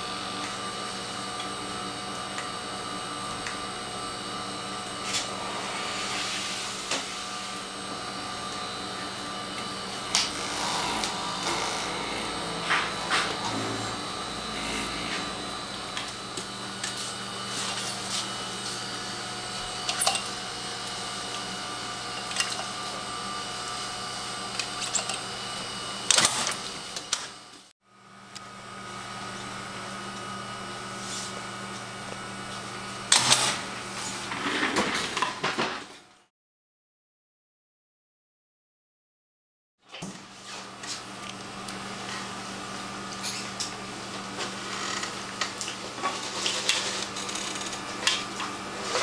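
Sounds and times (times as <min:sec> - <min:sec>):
laboratory equipment humming: 0:00.0 - 0:27.2, 0:41.2 - 0:49.0.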